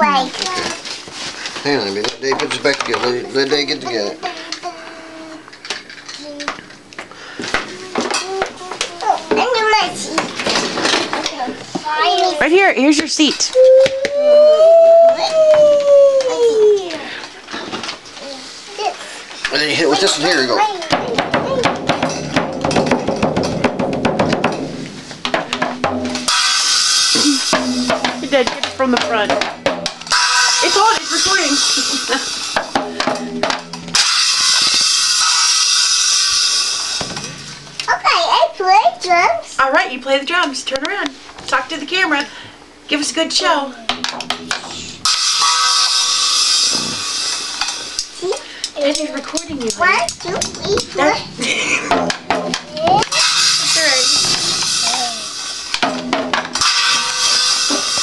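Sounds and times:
child's short vocal sound: 13.6s - 17.1s
small cymbal struck and ringing: 25.6s - 28.4s, 29.2s - 37.7s, 44.0s - 48.1s, 53.1s - 58.0s.

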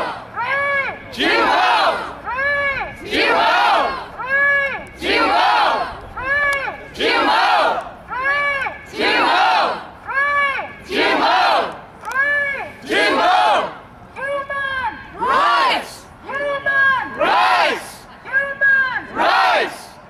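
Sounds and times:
crowd shouting back: 0.0s - 19.9s
woman shouting through megaphone: 0.0s - 19.9s.

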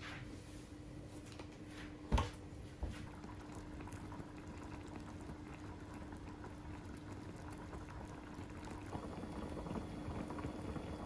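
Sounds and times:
broth bubbling in a pot: 2.8s - 11.0s.

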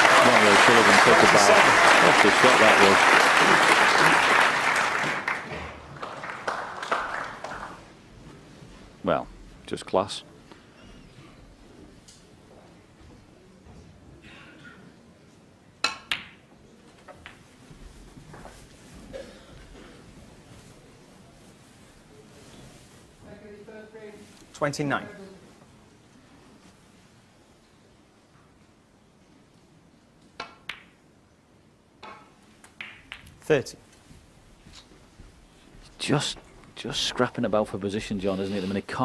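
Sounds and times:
snooker balls clicking together: 32.0s - 33.4s.

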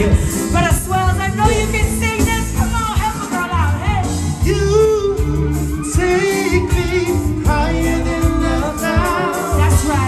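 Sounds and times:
live band playing a song: 0.0s - 10.0s.

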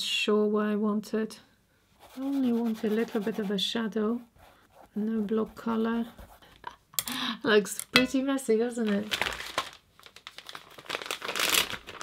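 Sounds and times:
paper towel crinkling and rustling: 8.8s - 12.0s.

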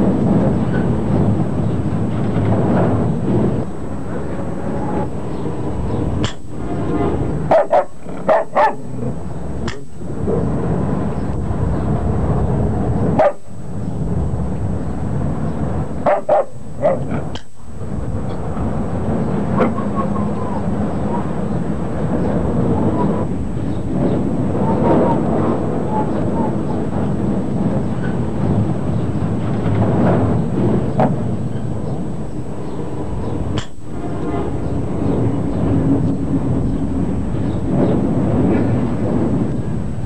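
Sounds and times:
steady background noise: 0.0s - 40.0s.

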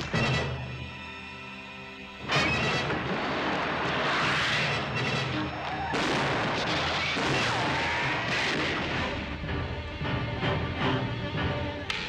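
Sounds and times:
echoing gunshots: 2.3s - 9.4s.

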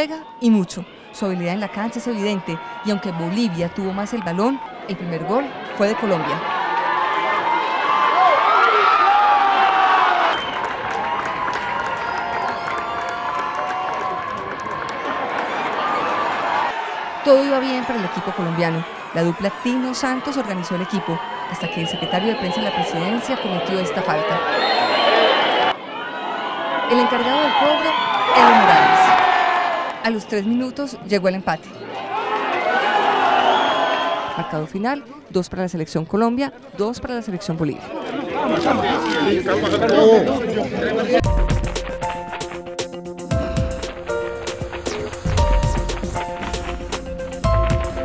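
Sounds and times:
crowd shouting and cheering: 0.0s - 35.4s, 36.6s - 48.0s.

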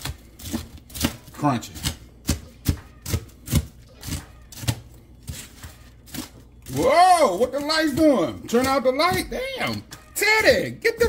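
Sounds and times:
knife chopping on cutting board: 0.0s - 6.4s, 7.4s - 10.2s.

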